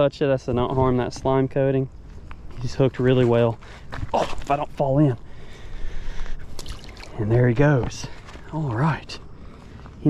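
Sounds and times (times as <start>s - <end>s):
water splashing and dripping: 6.5s - 7.2s.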